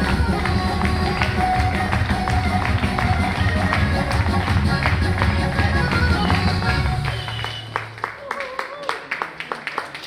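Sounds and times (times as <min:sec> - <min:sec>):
folk dance music: 0:00.0 - 0:08.4.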